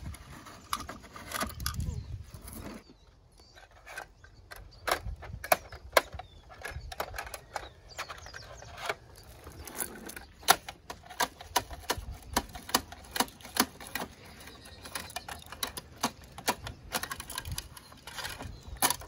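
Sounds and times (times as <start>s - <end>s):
toy truck plastic clicks and knocks: 3.6s - 19.0s.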